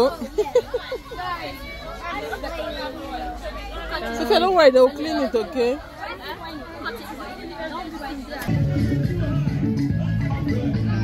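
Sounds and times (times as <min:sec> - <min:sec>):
chatter of voices: 0:00.0 - 0:11.0
loud music with strong bass: 0:08.5 - 0:11.0.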